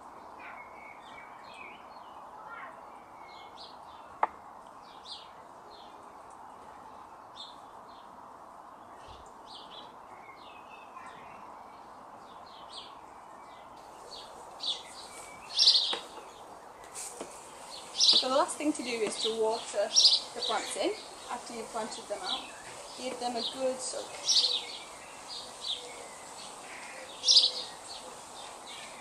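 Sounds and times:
garden birds chirping: 0.0s - 29.0s.

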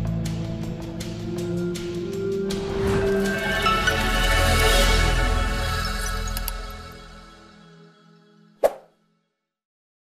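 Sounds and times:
background music: 0.0s - 9.4s.

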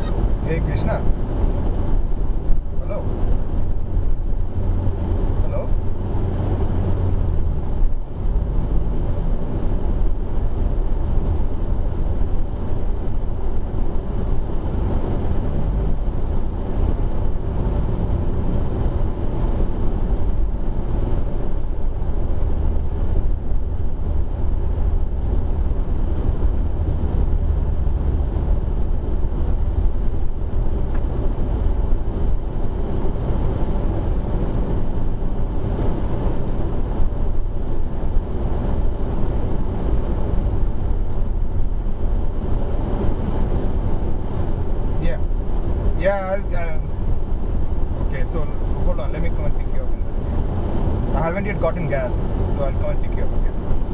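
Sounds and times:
car cabin rumble on wet road: 0.0s - 53.9s.

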